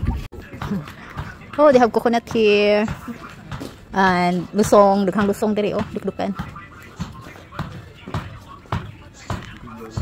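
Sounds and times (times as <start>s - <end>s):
footsteps walking: 0.0s - 10.0s.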